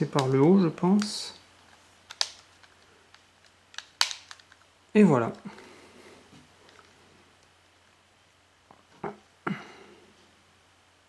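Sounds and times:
plastic frame clicking: 2.1 - 4.6.

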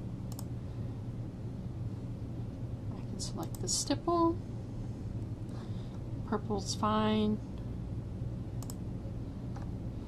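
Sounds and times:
steady low hum: 0.0 - 10.0
computer mouse clicks: 0.3 - 0.5, 3.4 - 3.7, 8.6 - 8.8, 9.5 - 9.7.

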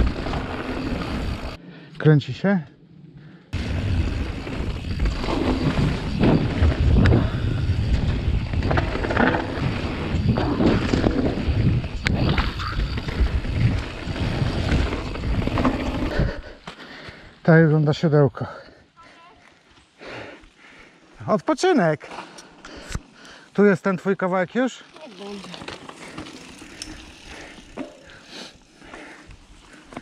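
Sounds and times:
bike tyre noise on dirt trail: 0.0 - 2.0, 2.9 - 30.0
wind on microphone: 5.6 - 16.4.

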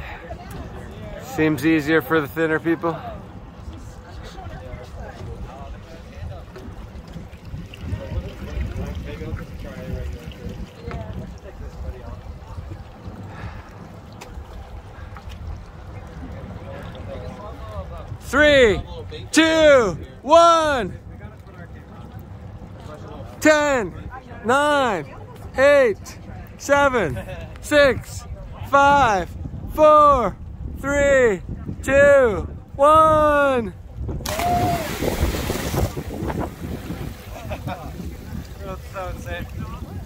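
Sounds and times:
faint voices talking: 0.0 - 40.0
wind rumbling on microphone: 3.0 - 19.3, 27.2 - 40.0.

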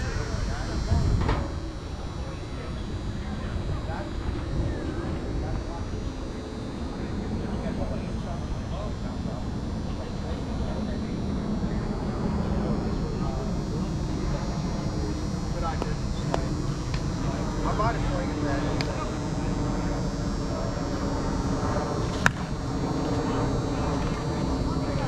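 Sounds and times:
wind buffeting microphone: 0.0 - 6.9
distant voices: 0.0 - 25.0.

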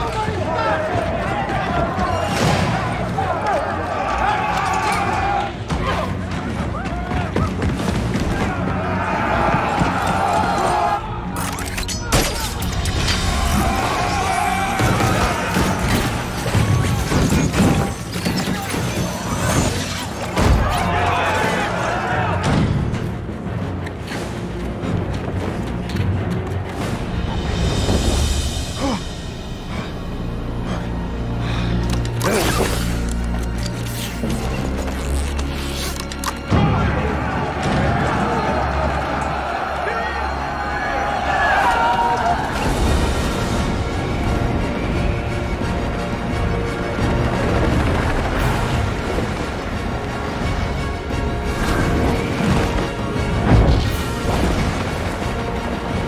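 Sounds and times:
people shouting: 0.0 - 22.8, 36.5 - 43.2
tense film music with low drone: 0.0 - 56.0.

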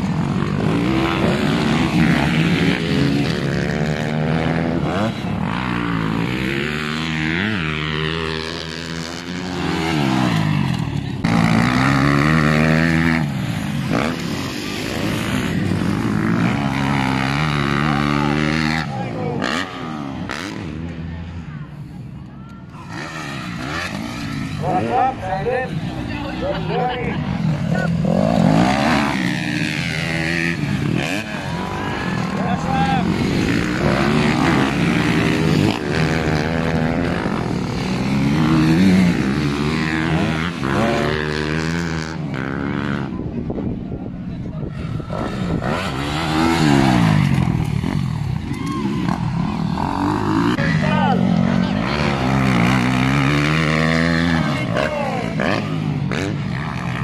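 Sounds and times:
dirt bike engines revving: 0.0 - 57.0.

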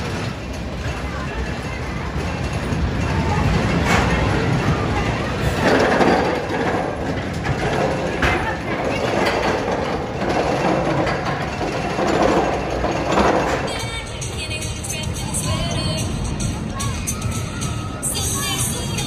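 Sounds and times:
roller coaster rumble: 0.0 - 19.0.

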